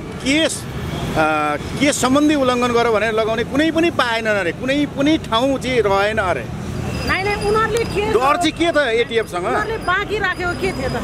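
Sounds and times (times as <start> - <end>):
motorbikes and cars passing: 0.0 - 11.0.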